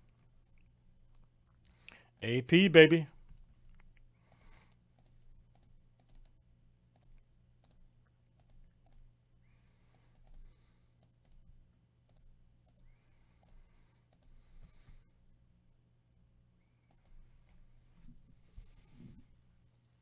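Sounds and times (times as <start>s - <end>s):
computer mouse clicks: 3.3s - 9.1s, 9.8s - 11.4s, 12.0s - 14.4s, 16.8s - 17.2s.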